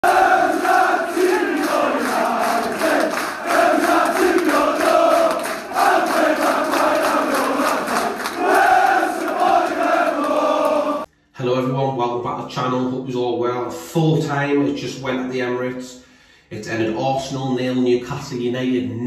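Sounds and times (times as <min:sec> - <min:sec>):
crowd singing a chant: 0:00.0 - 0:11.1.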